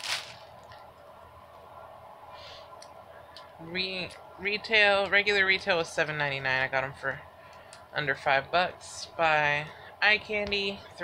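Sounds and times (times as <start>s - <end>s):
clothing and packaging rustling: 0.0s - 0.8s.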